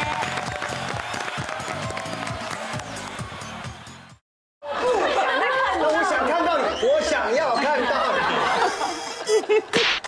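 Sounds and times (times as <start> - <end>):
lively conversation: 5.1 - 8.9.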